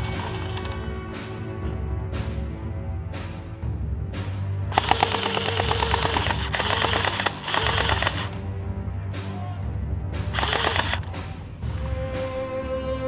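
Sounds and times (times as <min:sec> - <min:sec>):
background music: 0:00.0 - 0:13.0.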